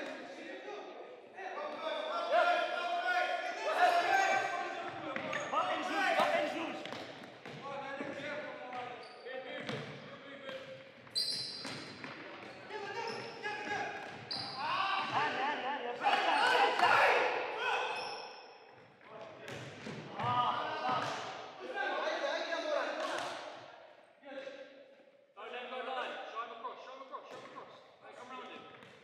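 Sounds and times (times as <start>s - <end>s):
players calling out: 12.6s - 18.1s.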